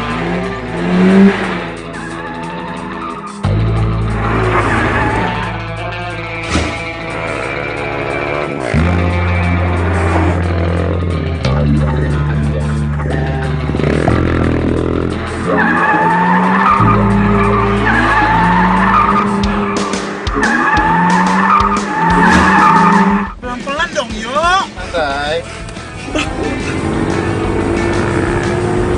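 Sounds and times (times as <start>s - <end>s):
car tyres squealing: 0.0s - 11.1s, 13.2s - 23.4s
car engine noise: 0.0s - 28.9s
driving action music: 0.0s - 28.9s.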